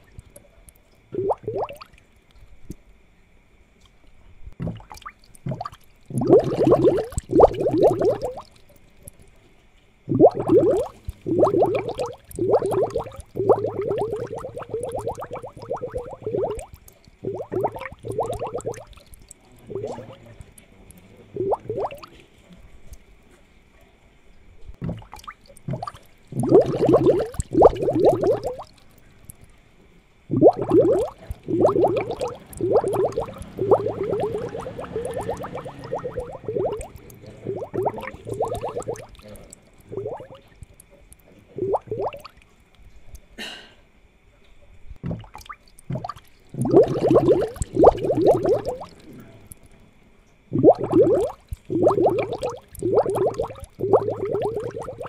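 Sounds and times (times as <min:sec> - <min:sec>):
aquarium water bubbling: 0:00.0 - 0:43.4, 0:44.1 - 0:55.0.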